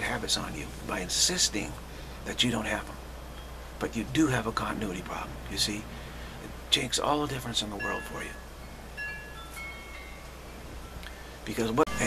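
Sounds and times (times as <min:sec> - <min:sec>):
steady low hum: 0:00.0 - 0:12.0
chimes ringing: 0:03.3 - 0:03.7, 0:07.6 - 0:12.0.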